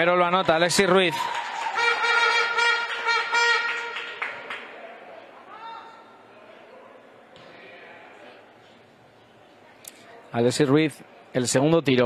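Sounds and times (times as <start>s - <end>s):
sports hall ambience: 0.0s - 12.0s
horn long steady note: 1.7s - 4.3s.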